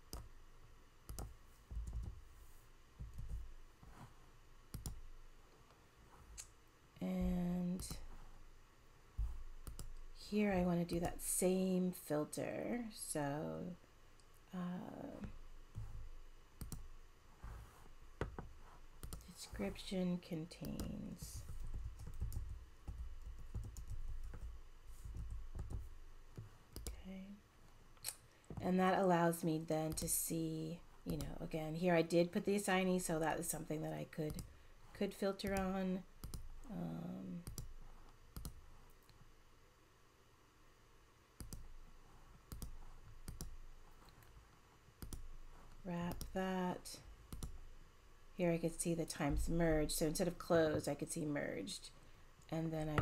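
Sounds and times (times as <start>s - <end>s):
computer keyboard typing: 1.1s - 2.2s, 4.7s - 5.0s, 9.6s - 10.0s, 20.6s - 25.9s, 42.5s - 43.6s.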